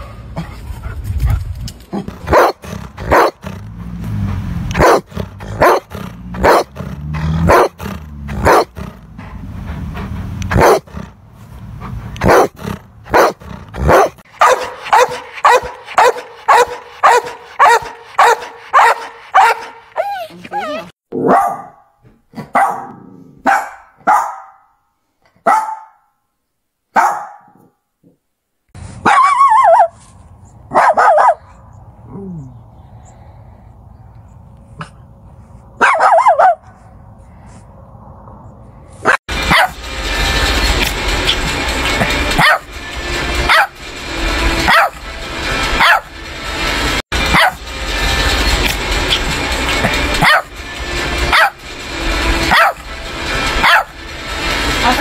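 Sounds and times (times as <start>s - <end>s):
low rumble: 0.1s - 20.0s, 36.7s - 55.0s
dogs barking: 2.0s - 9.0s, 10.5s - 11.1s, 12.2s - 24.6s, 25.4s - 26.0s, 26.9s - 27.6s, 30.7s - 31.7s, 35.8s - 36.8s, 39.0s - 39.8s, 42.0s - 42.8s, 43.4s - 43.8s, 44.5s - 45.0s, 45.6s - 46.1s, 47.2s - 47.7s, 49.1s - 50.6s, 51.2s - 51.6s, 52.4s - 54.0s
high ringing barks: 53.6s - 54.0s.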